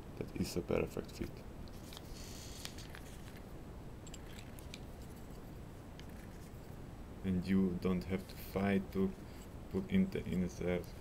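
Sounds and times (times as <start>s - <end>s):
handling rustle: 1.7s - 6.8s.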